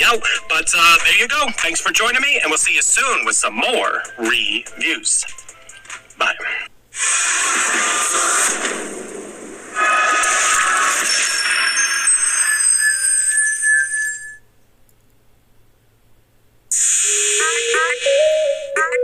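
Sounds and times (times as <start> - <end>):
shimmering high tones: 10.9 - 14.5.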